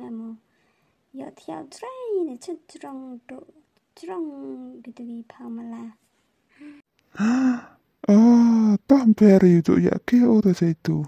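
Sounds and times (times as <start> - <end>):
person speaking: 7.2 - 11.0.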